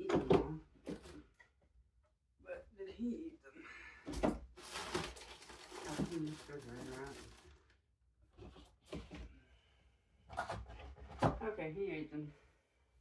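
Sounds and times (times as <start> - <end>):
rustling and knocking while rummaging: 0.0 - 1.6, 8.3 - 9.3, 10.3 - 11.5.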